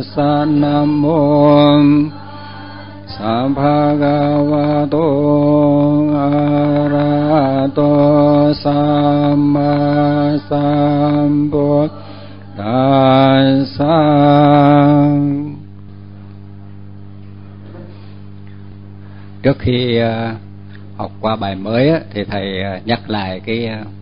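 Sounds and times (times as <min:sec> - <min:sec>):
man chanting held notes: 0:00.0 - 0:15.6
continuous low drone: 0:00.0 - 0:17.4.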